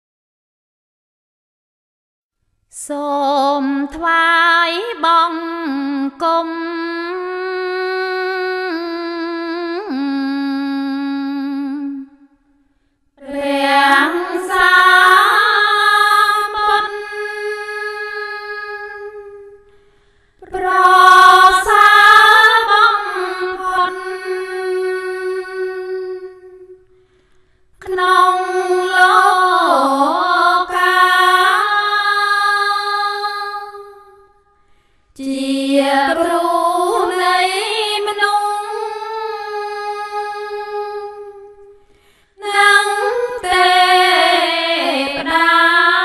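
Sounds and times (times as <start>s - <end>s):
woman chanting unaccompanied: 2.8s - 12.2s, 13.2s - 19.6s, 20.4s - 26.6s, 27.8s - 34.2s, 35.2s - 41.5s, 42.4s - 46.0s
person chanting melodic verse: 13.2s - 19.6s, 27.8s - 33.7s.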